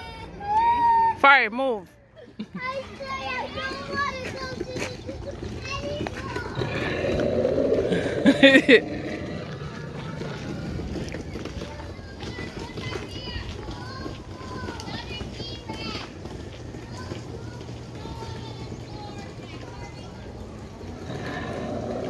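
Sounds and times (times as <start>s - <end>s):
children chattering: 0.0s - 1.2s, 1.8s - 22.0s
loud rough sound: 6.2s - 11.6s.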